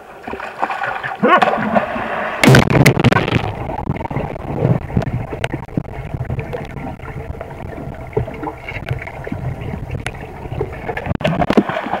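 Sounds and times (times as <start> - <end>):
muffled churning water underwater: 0.0 - 12.0
water splashing: 0.0 - 12.0.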